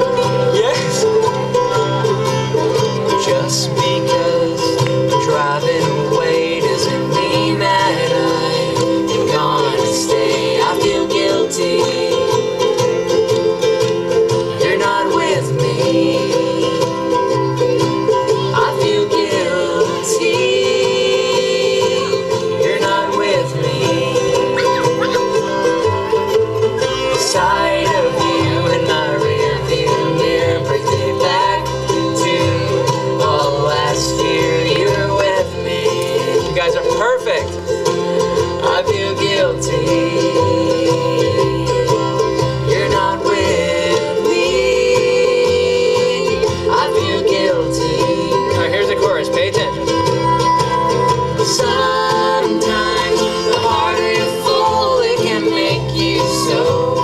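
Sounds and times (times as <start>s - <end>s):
ukuleles and guitar strumming: 0.0s - 57.0s
upright bass: 0.0s - 57.0s
violin and mandolin: 0.0s - 57.0s.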